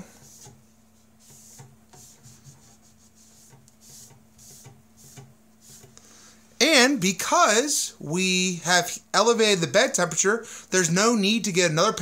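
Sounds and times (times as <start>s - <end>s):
paper towel wiping a printer bed: 0.0s - 5.9s
faint steady hum: 0.0s - 12.0s.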